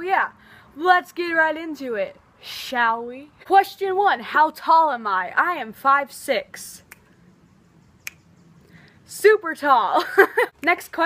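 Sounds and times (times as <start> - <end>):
faint background noise: 0.0 - 11.0
sharp click: 8.0 - 8.3.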